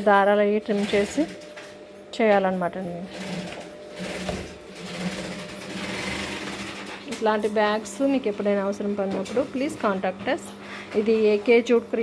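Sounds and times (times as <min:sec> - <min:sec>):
sewing machine running: 0:00.7 - 0:01.7, 0:02.9 - 0:10.0.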